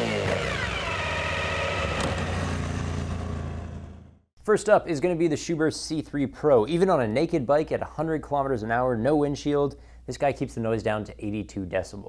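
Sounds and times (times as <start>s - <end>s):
motorcycle engine revving: 0.0s - 4.3s.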